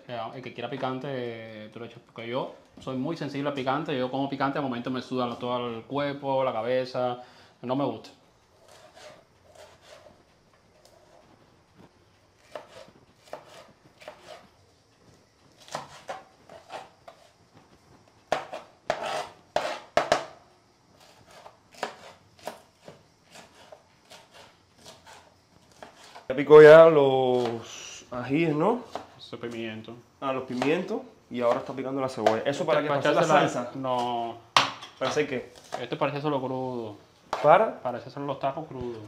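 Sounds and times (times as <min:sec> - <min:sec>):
knife slicing on cutting board: 0:08.6 - 0:10.2, 0:12.4 - 0:14.5, 0:15.6 - 0:17.4, 0:18.3 - 0:19.9, 0:21.0 - 0:26.2.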